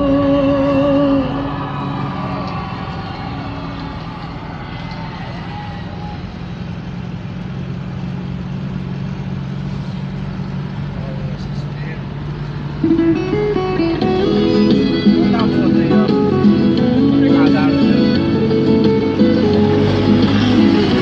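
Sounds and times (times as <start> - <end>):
vehicle engine drone: 0.0 - 21.0.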